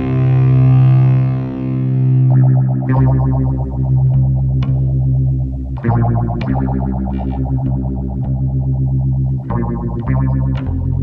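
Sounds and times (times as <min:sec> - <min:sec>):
distorted electric guitar: 0:00.0 - 0:11.0
low bass drone: 0:00.0 - 0:11.0.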